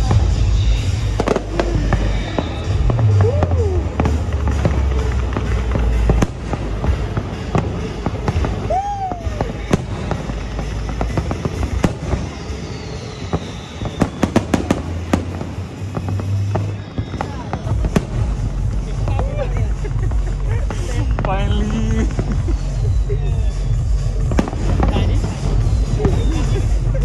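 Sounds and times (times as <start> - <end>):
crackling fireworks reports: 0.0 - 27.0
fireworks booms and bangs: 0.0 - 27.0.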